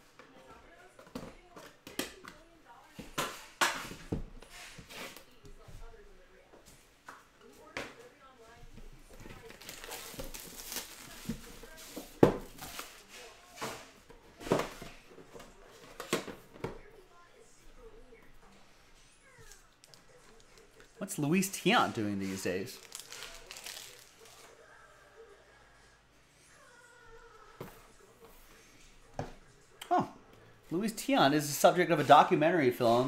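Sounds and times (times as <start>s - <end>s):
plastic shrink wrap crinkling: 9.2s - 13.0s, 19.4s - 24.5s.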